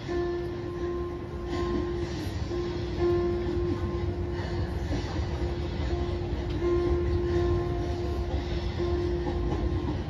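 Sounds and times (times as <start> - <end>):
held musical tone: 0.0 - 10.0.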